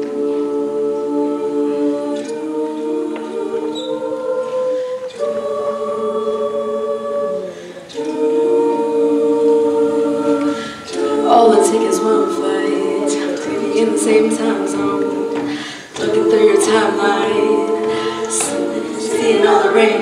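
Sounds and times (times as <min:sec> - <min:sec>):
a cappella group singing chords: 0:00.0 - 0:20.0.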